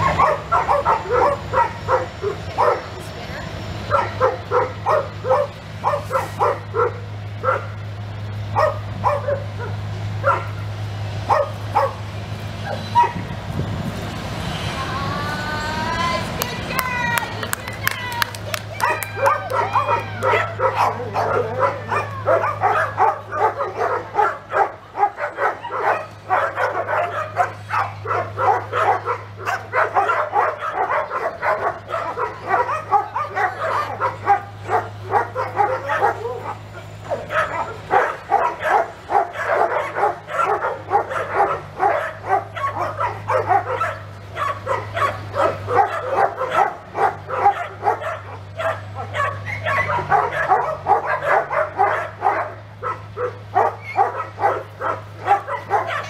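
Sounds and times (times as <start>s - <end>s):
dogs barking: 0.0s - 3.2s, 3.8s - 7.9s, 8.5s - 13.3s, 18.0s - 56.0s.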